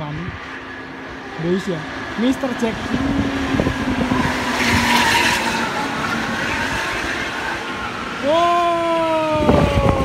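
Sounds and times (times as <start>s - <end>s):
bus engine drone: 0.0s - 10.0s.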